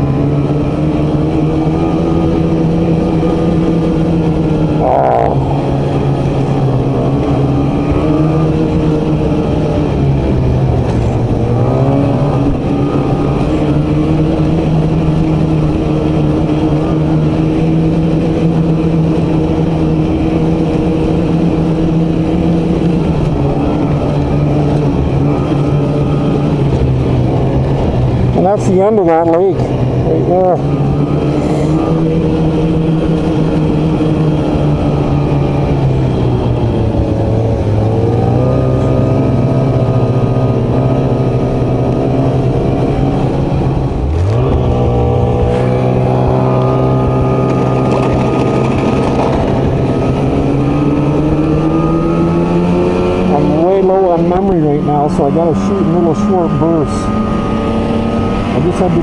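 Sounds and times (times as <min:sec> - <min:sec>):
snowmobile engine running: 0:00.0 - 0:59.0.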